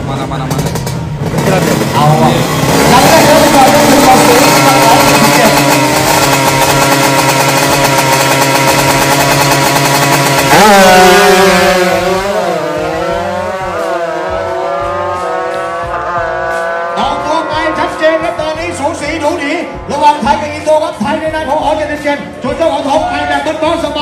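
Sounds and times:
motorcycle engine revving and accelerating: 0.0s - 21.9s.

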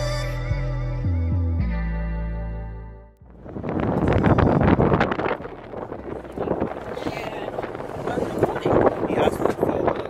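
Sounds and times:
background music: 0.0s - 3.2s
street ambience: 0.0s - 10.0s
wind buffeting microphone: 3.2s - 10.0s.

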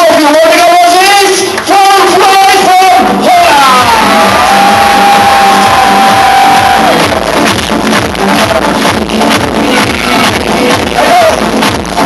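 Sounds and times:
beatboxing: 3.8s - 12.0s.

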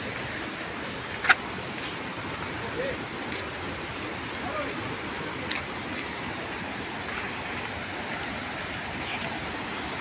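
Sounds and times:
waterfall roaring: 0.0s - 10.0s.

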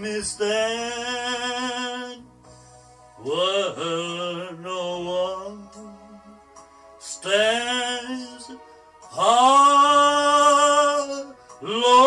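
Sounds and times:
man singing a long note: 3.2s - 6.4s.

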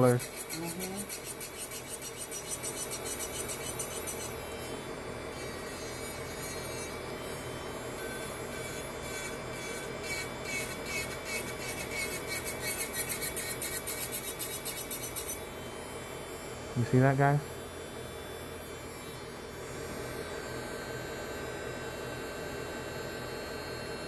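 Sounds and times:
drill bit rasping on nail: 0.0s - 15.6s
nail drill motor whine: 0.0s - 24.0s.

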